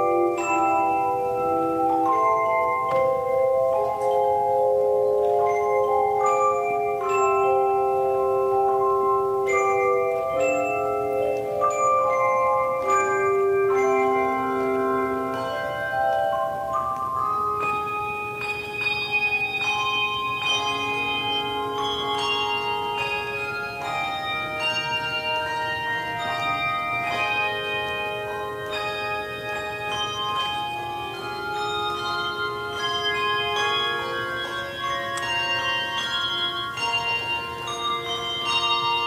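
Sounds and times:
struck ringing melody over chords: 0.0 - 39.0.

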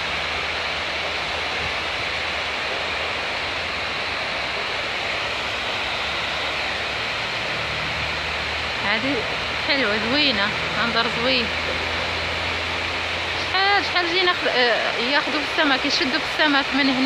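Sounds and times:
water rushing over a weir: 0.0 - 17.0.

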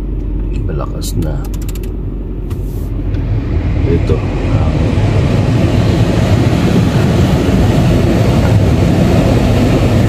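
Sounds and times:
car engine rumble in cabin: 0.0 - 10.0.

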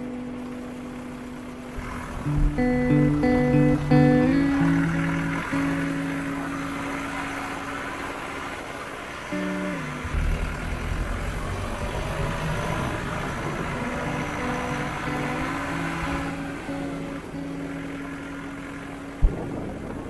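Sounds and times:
background music with held notes: 0.0 - 19.8
car engine and road noise: 0.0 - 20.0.

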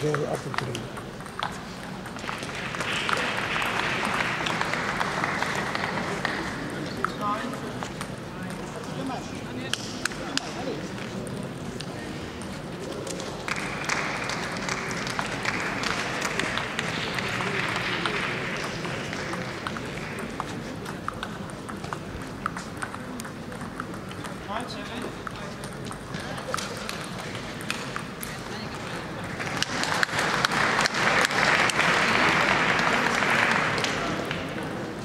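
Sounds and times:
table tennis ball clicks: 0.0 - 3.2, 19.1 - 28.9
murmur of voices: 0.0 - 35.0
crowd applause: 2.2 - 7.1, 13.4 - 20.8, 28.8 - 35.0.

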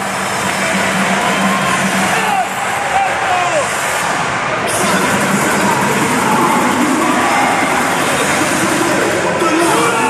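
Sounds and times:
cheerleading music over speakers: 0.0 - 10.0
shouting voices: 4.7 - 10.0.

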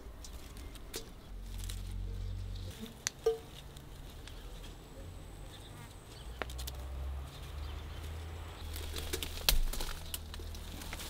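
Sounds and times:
leaves rustling: 0.0 - 11.0.

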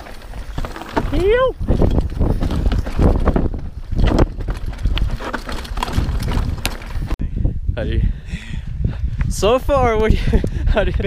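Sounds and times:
mountain bike rattling over rocks: 0.0 - 7.2
wind noise on microphone: 0.0 - 11.0.

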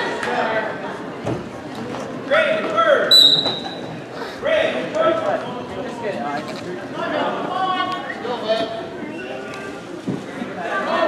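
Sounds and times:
referee's whistle: 3.1 - 3.8.

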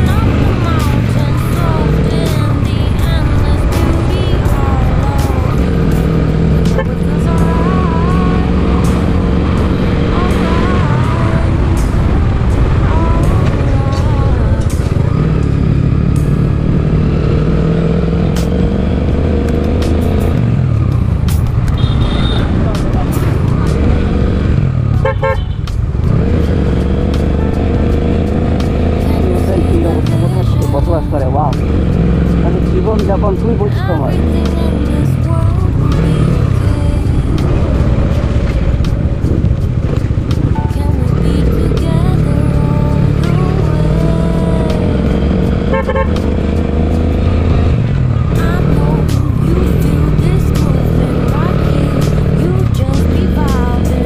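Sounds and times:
motorcycle engine running: 0.0 - 54.0
song playing: 0.0 - 54.0
wind and road noise: 0.0 - 54.0.

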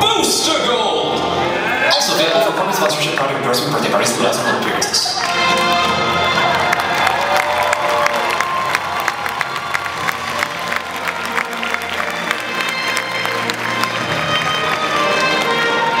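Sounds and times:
audience clapping and cheering: 4.6 - 16.0.

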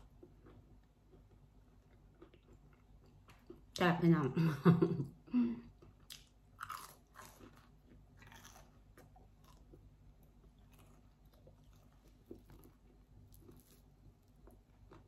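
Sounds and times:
chewing crunchy food: 0.0 - 3.8, 5.7 - 15.0.

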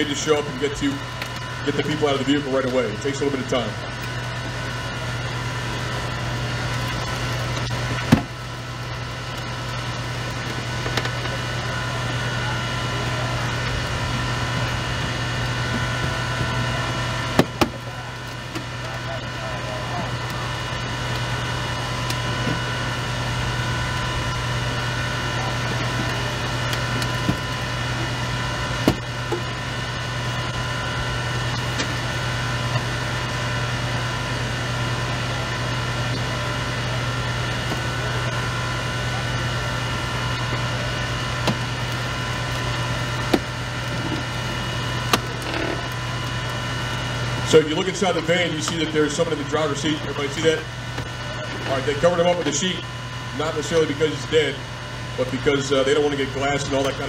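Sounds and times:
hydraulic power unit engine drone: 0.0 - 57.0.

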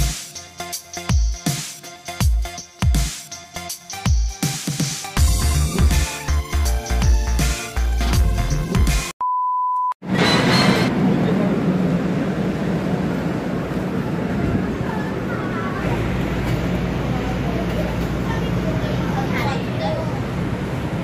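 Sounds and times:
steady beep tone: 9.2 - 10.0
train car interior noise: 10.0 - 21.0.

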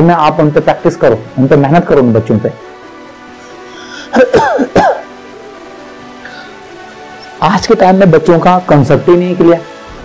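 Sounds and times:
soft background music: 0.0 - 10.0
man coughing: 4.1 - 5.1.

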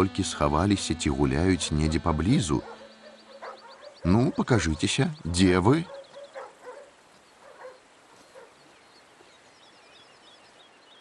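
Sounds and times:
small birds chirping: 1.1 - 11.0.

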